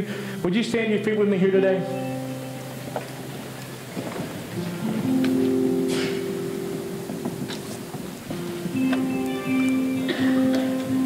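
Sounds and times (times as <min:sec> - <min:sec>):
sustained chord notes: 0:01.2 - 0:11.0
light rustle: 0:02.9 - 0:09.1.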